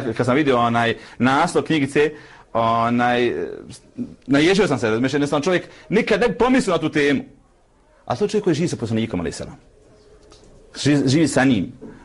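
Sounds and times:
man speaking: 0:00.0 - 0:07.4, 0:08.0 - 0:09.7, 0:10.7 - 0:11.9.

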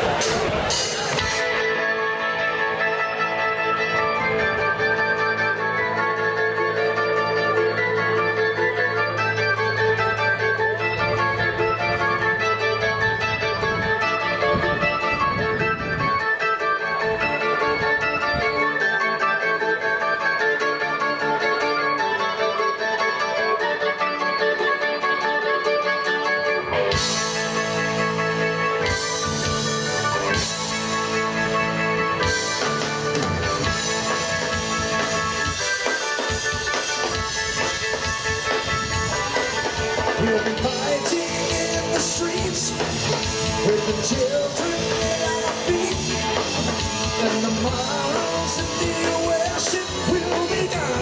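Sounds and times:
electric guitar lines: 0:00.0 - 0:51.0
held keyboard notes: 0:00.0 - 0:51.0.

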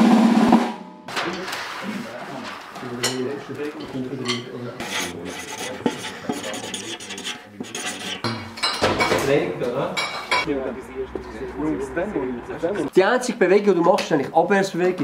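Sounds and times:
indistinct voices chattering: 0:01.8 - 0:08.7
dishes and cutlery clinking: 0:02.4 - 0:10.5.

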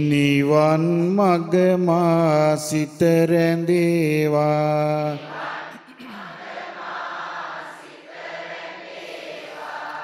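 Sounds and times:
many voices chanting: 0:04.6 - 0:10.0.

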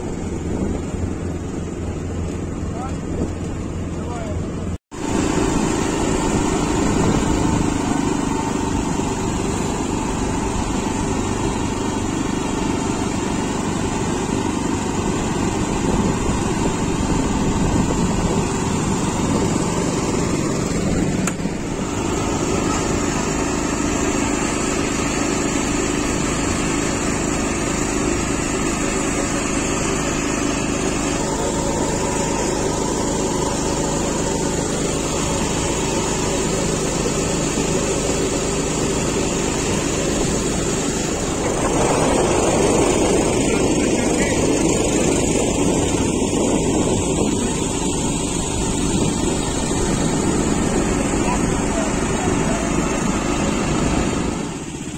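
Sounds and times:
road and wind noise: 0:00.0 - 0:54.9
small tractor engine running: 0:00.0 - 0:54.9.

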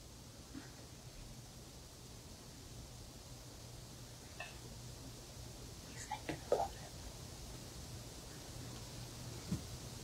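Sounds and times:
person whispering softly: 0:05.8 - 0:07.0.

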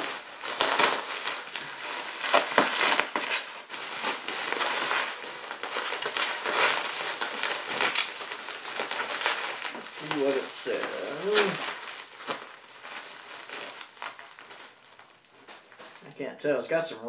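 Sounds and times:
bubble wrap crinkling: 0:00.0 - 0:16.2.

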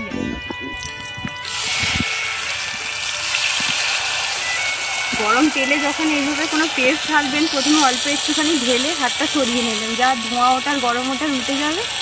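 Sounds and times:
spice paste sizzling in hot oil: 0:00.8 - 0:12.0.

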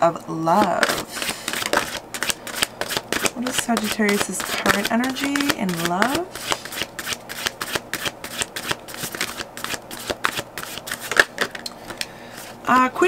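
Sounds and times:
cards being shuffled: 0:00.6 - 0:13.0.

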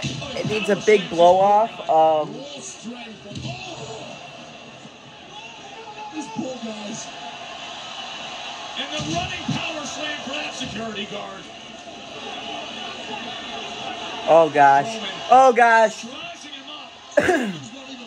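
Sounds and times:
commentator talking on tv: 0:00.0 - 0:04.4, 0:14.3 - 0:18.0
arena noise: 0:00.0 - 0:18.0.

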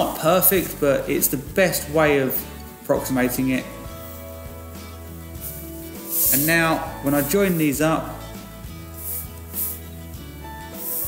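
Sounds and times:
soft music with held notes: 0:00.0 - 0:11.0.

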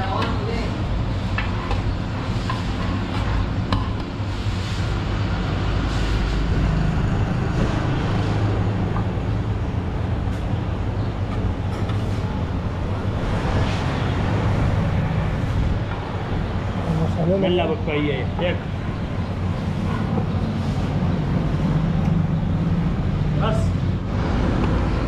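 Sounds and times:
busy street rumble: 0:00.0 - 0:25.0.

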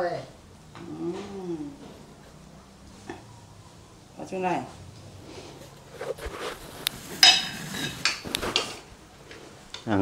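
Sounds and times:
chopsticks clinking on ceramic: 0:07.2 - 0:08.2.

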